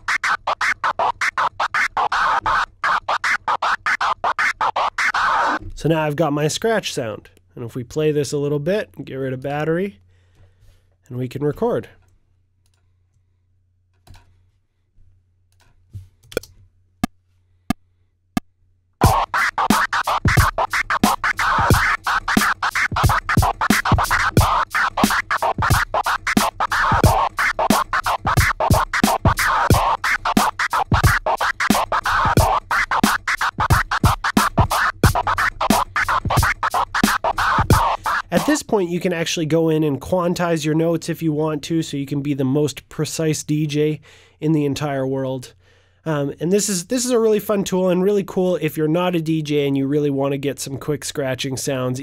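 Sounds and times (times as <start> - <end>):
drum loop: 0.0 - 5.6, 19.0 - 39.1
vinyl scratching: 0.0 - 6.3, 19.0 - 39.5.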